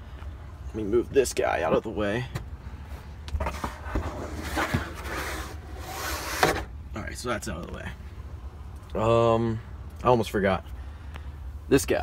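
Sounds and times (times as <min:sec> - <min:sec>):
plastic lid rubbing and scraping: 0:03.4 - 0:06.7.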